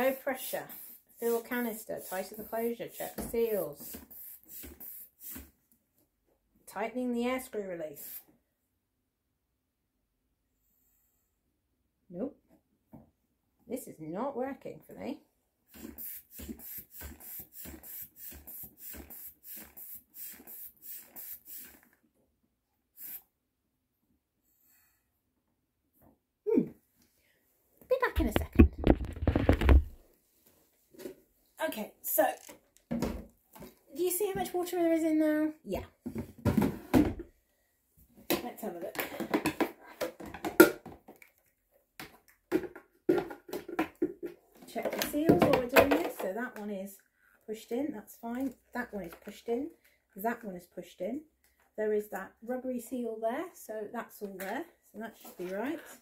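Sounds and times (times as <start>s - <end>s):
rubber bulb pump puffing air: 0.1s - 5.6s, 8.0s - 8.3s, 15.7s - 22.0s, 22.9s - 23.3s
plastic knocks and clatter: 28.2s - 30.0s, 32.5s - 33.8s, 36.0s - 37.3s, 38.3s - 41.4s, 42.0s - 46.3s.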